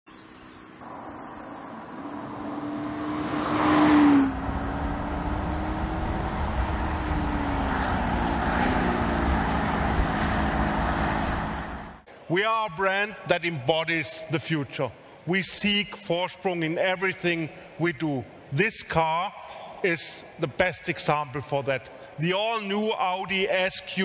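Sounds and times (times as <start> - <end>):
road rumble: 0.1 - 12.4
car engine passing by: 0.8 - 12.0.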